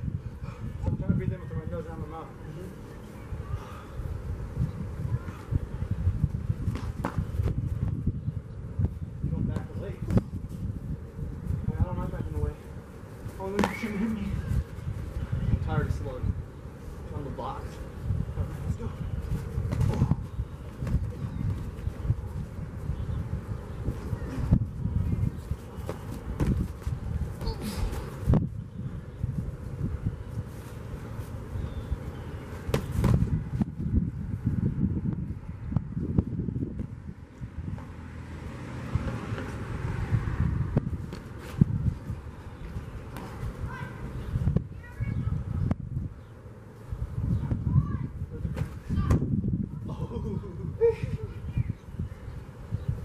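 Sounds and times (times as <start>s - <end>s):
wind rumbling on microphone: 0.0s - 53.0s.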